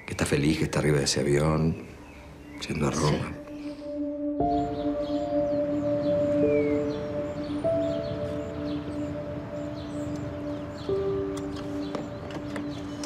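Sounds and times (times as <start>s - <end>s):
slow sustained soundtrack music: 1.8s - 13.0s.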